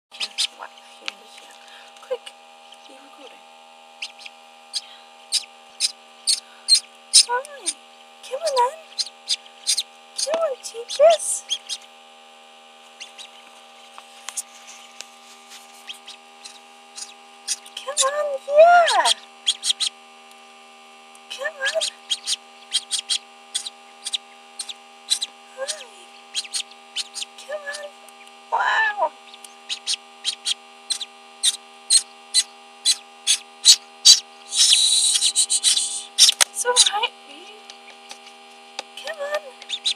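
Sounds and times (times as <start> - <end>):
faint incubator hum: 0.1 - 39.9
duckling peeping: 0.2 - 3.3, 3.9 - 12.0, 12.9 - 13.6, 15.6 - 20.0, 21.4 - 37.0, 39.1 - 39.9.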